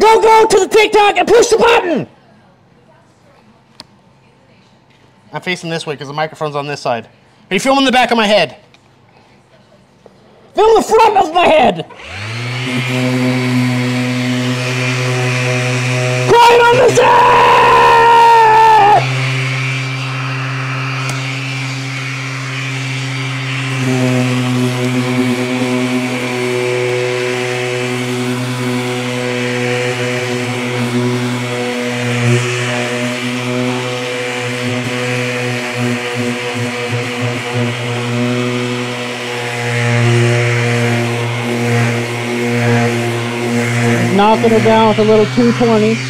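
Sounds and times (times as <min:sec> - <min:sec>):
electric orbital sander running: 0:10.6 - 0:46.0.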